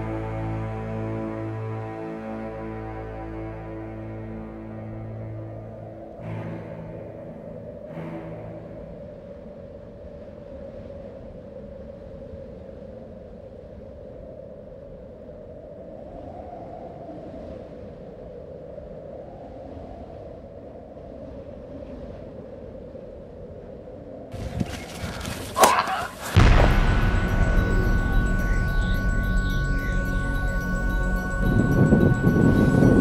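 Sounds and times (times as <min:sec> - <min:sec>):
music with sustained tones: 0:00.0 - 0:09.3, 0:26.4 - 0:33.0
wind buffeting microphone: 0:05.6 - 0:25.6, 0:26.2 - 0:33.0.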